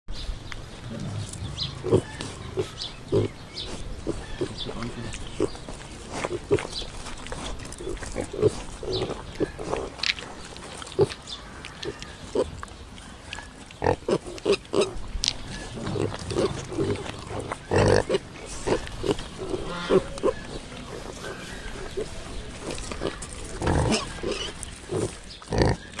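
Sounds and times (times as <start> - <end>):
bird chirps: 0.9 - 5.8.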